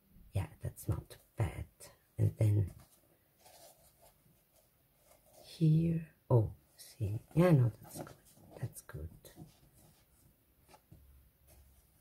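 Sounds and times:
fabric handling sounds: 2.4s - 5.8s.

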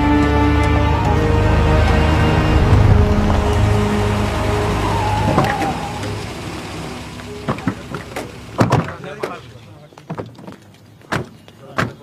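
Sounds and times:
background music: 0.0s - 9.2s
cars slowing to a stop: 0.0s - 9.8s.

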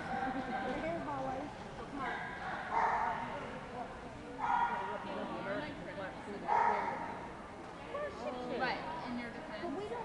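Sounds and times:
dog barking: 2.0s - 3.2s, 4.4s - 5.0s, 6.5s - 7.1s.

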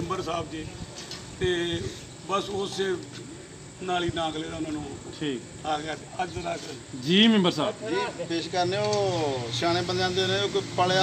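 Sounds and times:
man talking: 0.0s - 3.2s, 3.8s - 11.0s.

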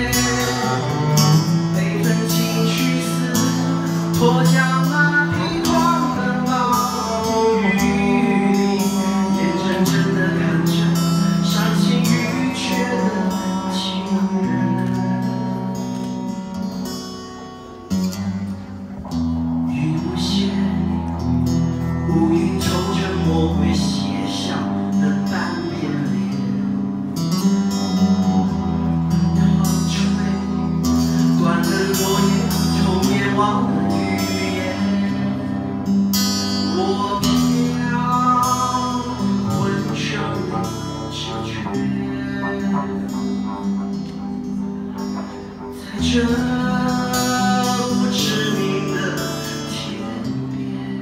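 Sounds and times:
acoustic guitar strumming chords: 0.0s - 51.0s.

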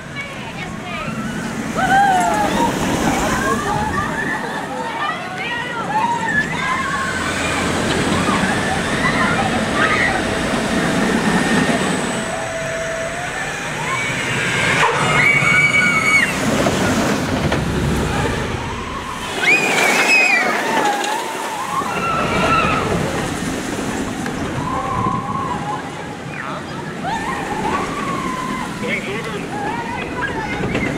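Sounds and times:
murmur of voices: 0.0s - 30.9s
roller coaster rumbling past: 0.0s - 30.9s
riders screaming: 0.9s - 17.2s, 17.8s - 30.9s.

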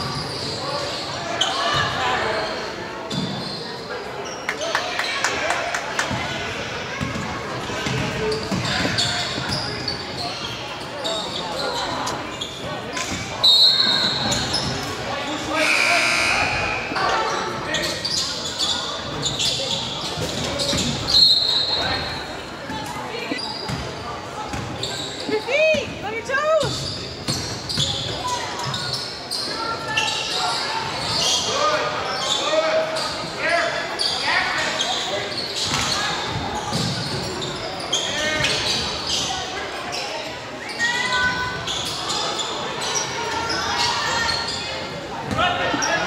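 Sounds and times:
sneakers squeaking: 0.0s - 5.2s, 6.0s - 46.0s
chatter of people: 0.0s - 46.0s
short high tones: 15.6s - 17.0s.

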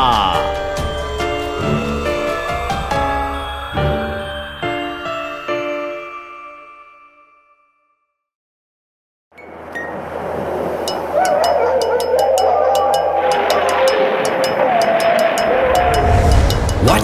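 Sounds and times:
wavering wailing tones: 0.0s - 6.9s, 10.8s - 17.0s
wind-like rushing noise: 15.4s - 17.0s.

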